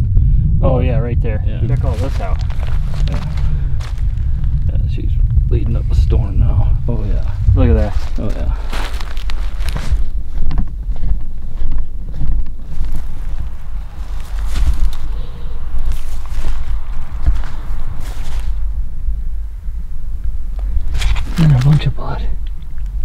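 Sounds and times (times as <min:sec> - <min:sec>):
low microphone rumble: 0:00.0 - 0:23.0
footsteps through dry stalks: 0:01.7 - 0:04.6, 0:07.2 - 0:18.7.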